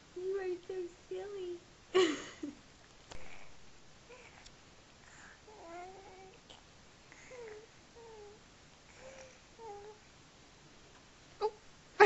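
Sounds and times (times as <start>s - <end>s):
baby cooing: 4.1s - 4.5s, 5.5s - 6.6s, 7.2s - 8.4s, 9.0s - 10.0s.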